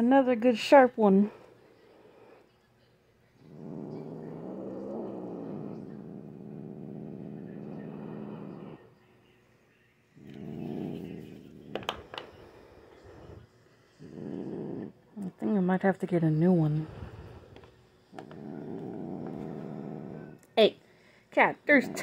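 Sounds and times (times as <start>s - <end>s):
cat growling: 3.4s - 9.0s, 10.2s - 15.1s, 16.8s - 20.5s.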